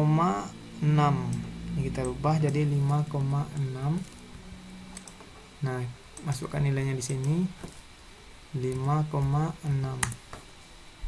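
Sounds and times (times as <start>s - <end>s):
computer keyboard keystrokes: 8.7s - 10.2s.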